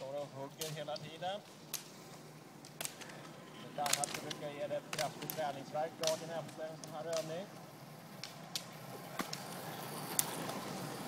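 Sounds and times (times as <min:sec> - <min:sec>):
steady rushing noise: 0:00.0 - 0:11.0
ski pole tips clicking on asphalt: 0:00.6 - 0:11.0.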